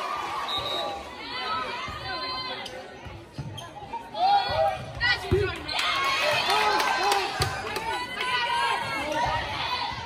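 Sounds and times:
crowd noise: 0.0s - 10.0s
shoe squeaks: 3.4s - 4.0s.

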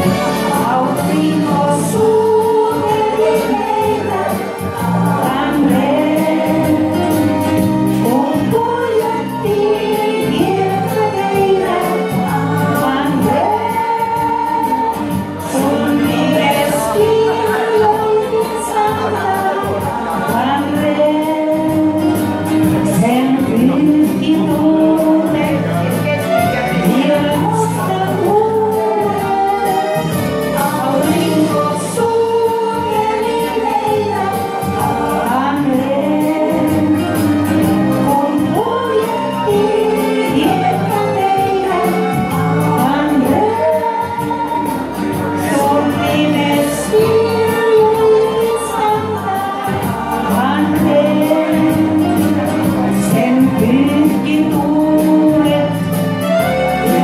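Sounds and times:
instrumental accompaniment with beat: 0.0s - 57.0s
karaoke backing track: 0.0s - 57.0s
woman singing: 0.0s - 57.0s.

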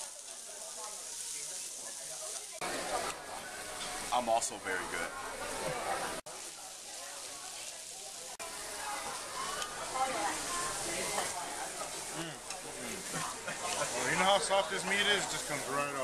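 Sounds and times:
meat sizzling on a grill: 0.0s - 16.0s
voices talking: 0.0s - 16.0s.

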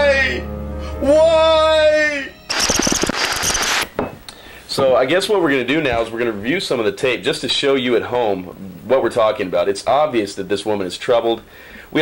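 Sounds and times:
dense rapid crackling noise: 2.5s - 3.9s.

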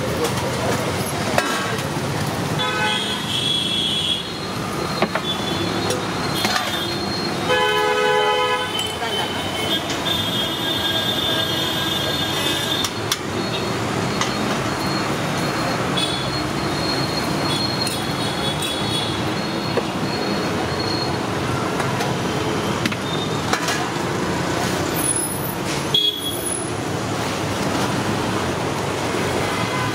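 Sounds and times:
roadside traffic noise: 0.0s - 29.9s
vehicle horn: 2.6s - 4.3s, 7.5s - 8.9s.

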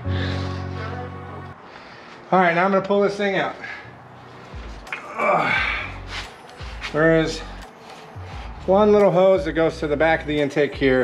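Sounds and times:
background music: 0.0s - 11.0s
man grunting with effort: 5.0s - 6.0s.

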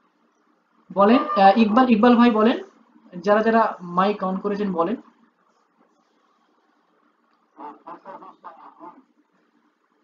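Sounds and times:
person speaking over video call: 0.9s - 5.1s.

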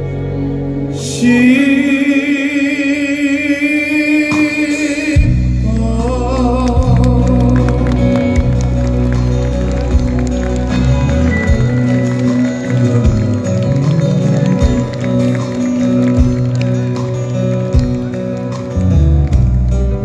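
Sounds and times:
live instrumental band playing: 4.3s - 20.0s.

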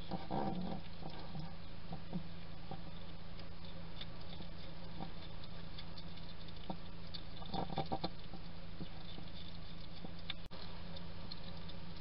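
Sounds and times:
hedgehog chewing and crunching food: 0.0s - 12.0s
steady low hum: 0.0s - 12.0s.

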